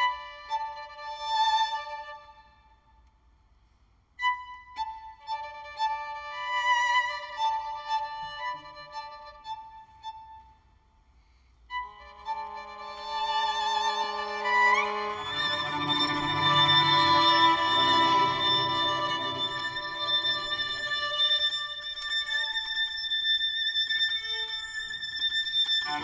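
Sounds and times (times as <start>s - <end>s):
high violin notes: 11.7s - 26.0s
viola and cello tones: 11.7s - 26.0s.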